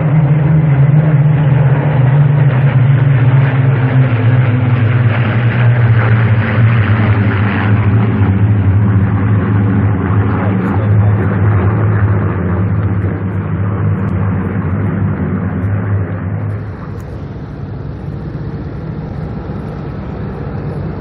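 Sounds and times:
propeller planes droning past: 0:00.0 - 0:21.0.

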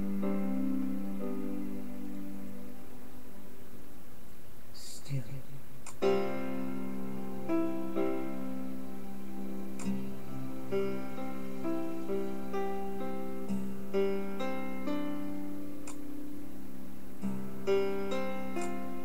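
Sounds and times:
slow ballad instrumental backing: 0:00.0 - 0:04.2, 0:05.9 - 0:19.0.

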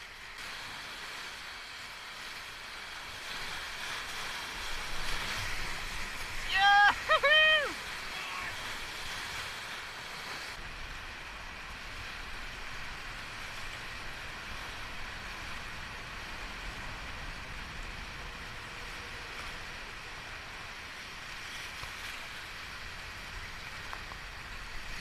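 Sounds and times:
whitewater rushing: 0:00.0 - 0:25.0.

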